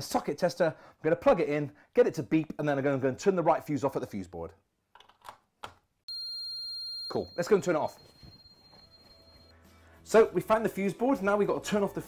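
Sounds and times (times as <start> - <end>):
high-pitched buzzer beep: 6.1 - 9.5.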